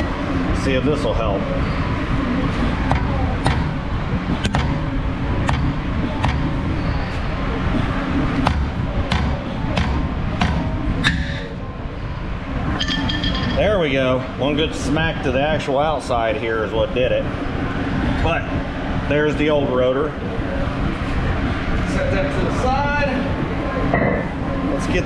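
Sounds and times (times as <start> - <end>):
steady low hum: 0.0 - 25.0
sharp metallic knocks: 12.8 - 13.7.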